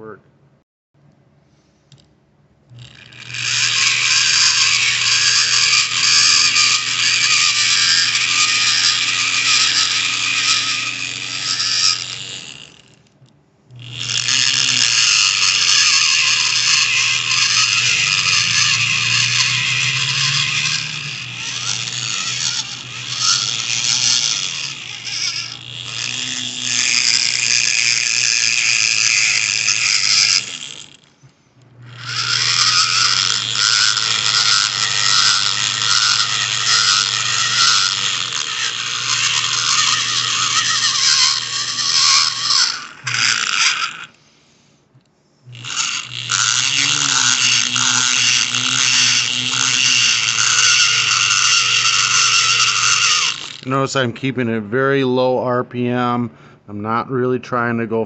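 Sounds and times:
pencil grinder cutting metal: 2.7 - 13.1, 13.8 - 31.1, 31.8 - 44.2, 45.5 - 53.8.

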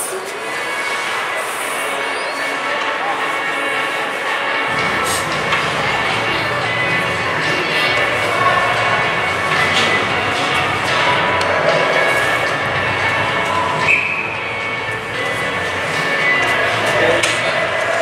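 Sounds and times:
faint background music: 0.0 - 18.0
indistinct voices: 0.0 - 18.0.

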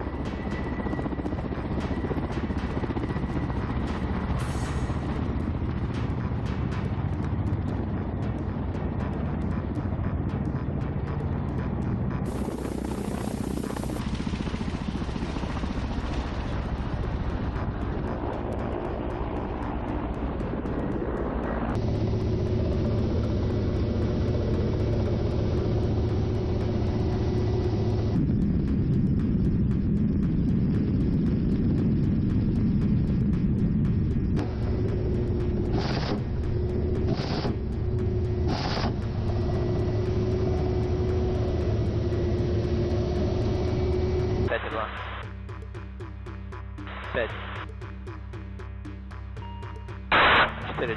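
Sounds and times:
helicopter rotors beating: 0.0 - 50.9.

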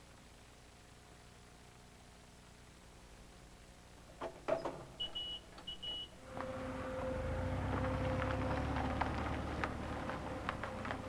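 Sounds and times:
constant hum: 0.0 - 11.0
steady low rumble: 6.2 - 11.0.

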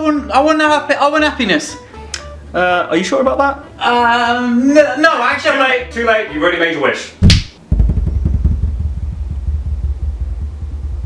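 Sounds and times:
low steady rumble: 7.6 - 11.0.

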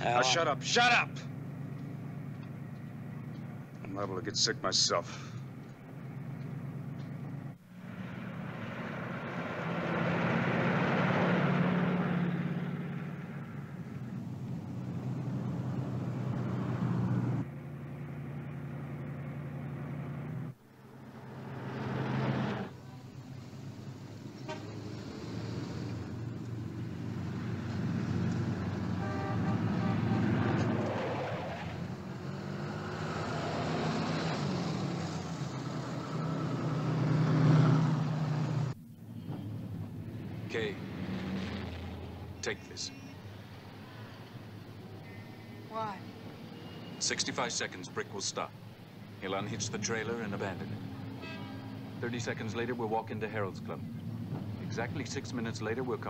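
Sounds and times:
truck engine on highway: 0.0 - 45.0, 45.6 - 56.0
town traffic: 0.0 - 56.0
car horns tooting: 24.3 - 24.9, 28.8 - 30.8, 51.2 - 51.8.

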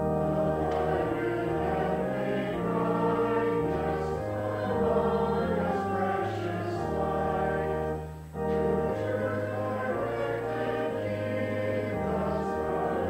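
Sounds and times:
congregation singing a hymn: 0.0 - 13.0
pipe organ: 0.0 - 13.0.

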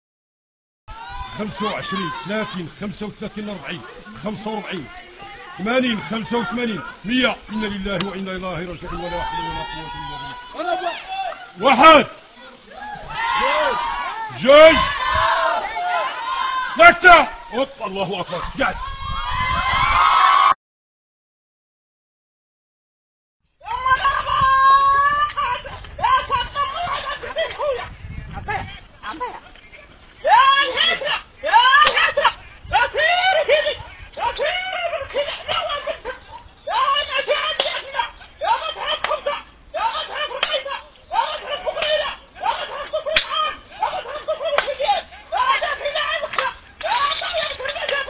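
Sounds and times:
sharp cracks: 40.3 - 40.8, 42.8 - 43.5, 44.5 - 45.0, 46.2 - 48.0.

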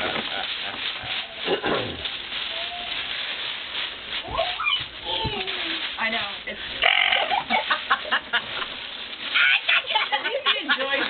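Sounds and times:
tissue paper rustling: 0.0 - 11.0.

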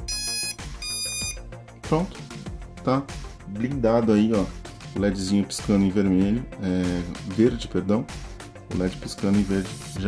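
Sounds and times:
high start-up beeps: 0.0 - 1.4.

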